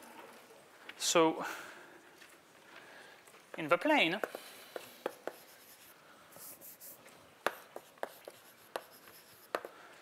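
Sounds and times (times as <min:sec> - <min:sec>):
chalk tapping on blackboard: 0:03.6 - 0:09.8
chalk scratching: 0:04.2 - 0:09.8.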